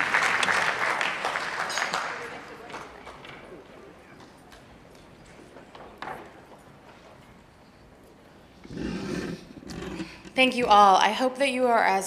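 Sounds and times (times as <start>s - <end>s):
applause: 0.0s - 3.6s.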